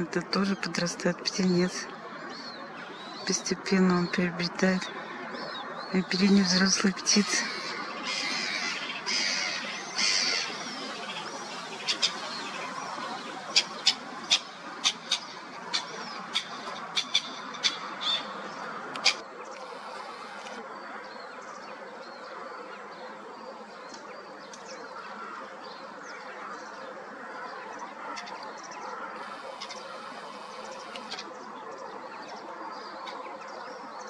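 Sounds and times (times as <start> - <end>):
steady outdoor hiss: 0.0 - 34.0
waterbirds calling: 0.0 - 34.0.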